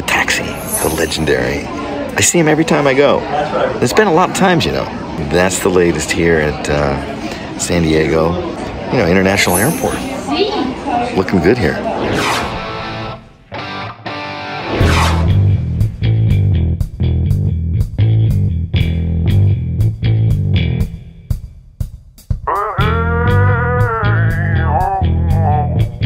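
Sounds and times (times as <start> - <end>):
rising whoosh effects: 0.4 - 1.8, 11.8 - 13.4, 14.7 - 15.4.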